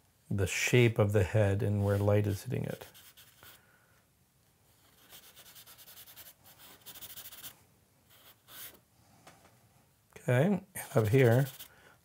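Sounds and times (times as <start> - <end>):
charcoal scratching on paper: 1.8 - 3.6, 4.8 - 7.5, 8.1 - 8.8, 10.8 - 11.7.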